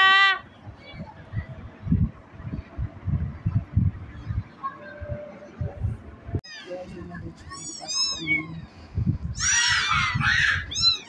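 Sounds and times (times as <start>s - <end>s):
kittens mewing: 7.4s - 11.0s.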